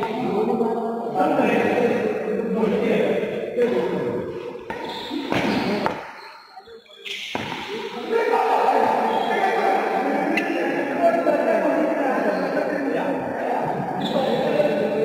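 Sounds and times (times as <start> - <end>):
voices echoing in hall: 0.0 - 15.0
racket hitting shuttlecock: 4.6 - 6.2, 7.3 - 7.9.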